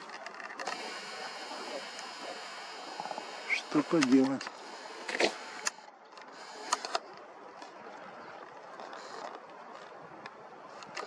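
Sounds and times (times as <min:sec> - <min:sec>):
sharp clicks: 0:00.0 - 0:07.7
city background noise: 0:00.0 - 0:11.0.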